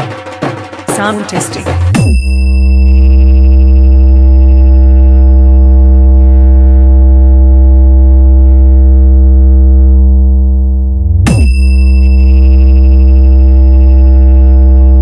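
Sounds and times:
deep synthesizer bass note: 1.9s - 15.0s.

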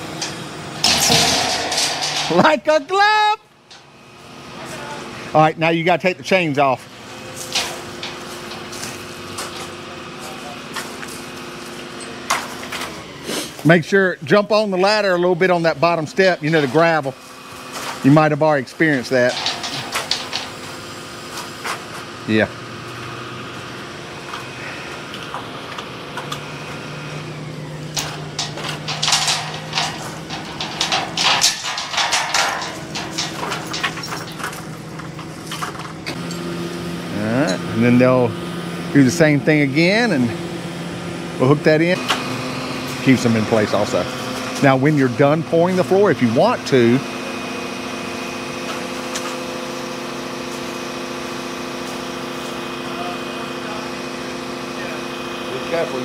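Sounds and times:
sharp metallic knocks: 0.0s - 3.0s, 18.9s - 20.8s, 27.9s - 36.4s
excavator engine running: 0.0s - 56.0s
metal chain clinking and rattling: 0.2s - 2.6s, 19.0s - 20.8s, 27.9s - 36.4s.

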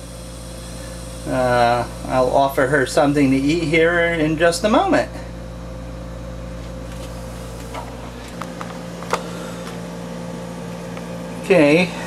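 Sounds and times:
machine hum: 0.0s - 12.0s.

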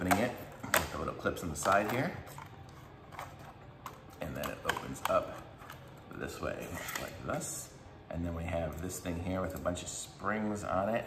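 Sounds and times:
handling plastic phone case: 0.0s - 6.1s
plastic clips clicking: 3.8s - 5.9s.

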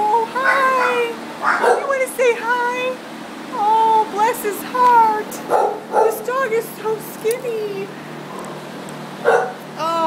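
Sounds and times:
dog barking: 0.4s - 2.0s, 5.5s - 6.3s, 9.2s - 9.6s.

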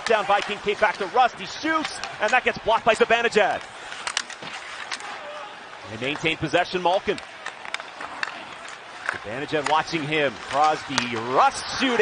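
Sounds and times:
hockey sticks clicking puck: 0.0s - 5.2s, 5.9s - 12.0s
skates on ice: 0.0s - 12.0s.

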